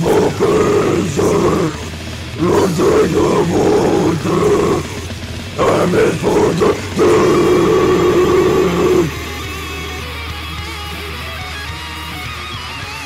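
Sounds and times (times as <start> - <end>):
deep growled vocals: 0.0 - 10.2
distorted electric guitars: 0.0 - 13.0
electric guitar with bent notes: 0.0 - 13.0.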